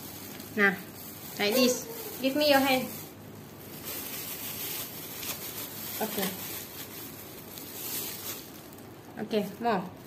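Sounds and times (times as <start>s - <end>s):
plastic bag rustling: 0.0s - 10.0s
plastic gloves rustling: 0.0s - 10.0s.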